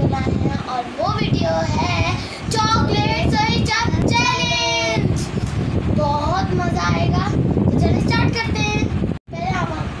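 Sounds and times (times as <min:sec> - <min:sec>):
girl singing: 0:00.0 - 0:10.0.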